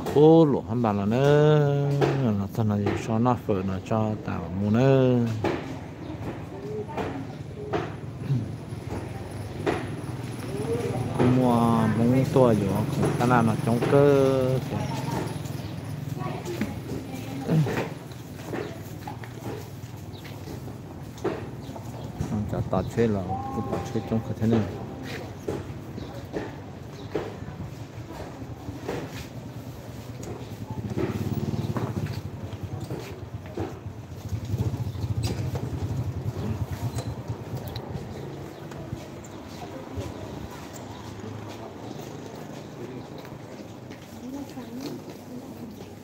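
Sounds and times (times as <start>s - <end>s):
people talking in background: 0.0s - 46.0s
street and market noise: 0.0s - 46.0s
small motorcycle engine putter: 30.2s - 38.9s.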